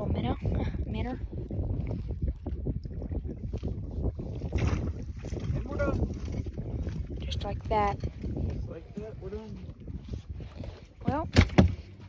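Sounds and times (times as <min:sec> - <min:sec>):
water moving against boat: 0:00.0 - 0:12.0
wind rumbling on microphone: 0:00.0 - 0:12.0.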